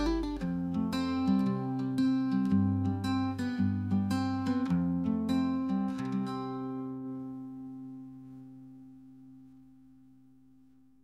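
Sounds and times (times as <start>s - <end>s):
strummed acoustic guitar chord: 0.0s - 8.7s.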